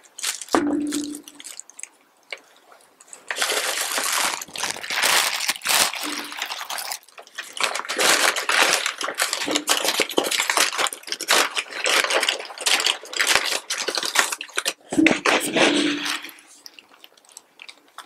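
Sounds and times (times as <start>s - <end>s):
paper and plastic packaging crinkling: 0.0s - 18.0s.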